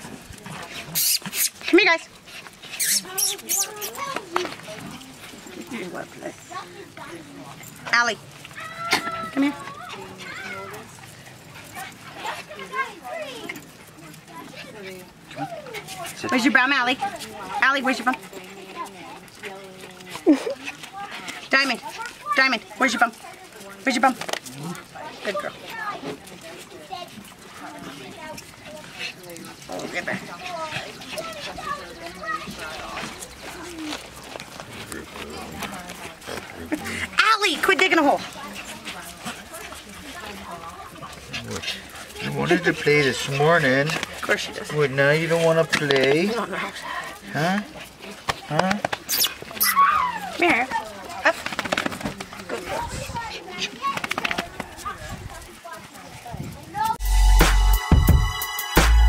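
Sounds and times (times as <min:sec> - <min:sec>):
small dog noises: 0:00.0 - 0:57.0
dogs whining: 0:02.6 - 0:04.2, 0:49.0 - 0:50.5.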